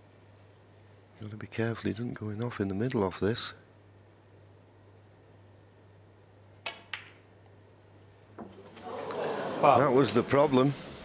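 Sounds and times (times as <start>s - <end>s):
balls clicking together: 6.6s - 7.2s
cue striking ball: 6.7s - 7.2s.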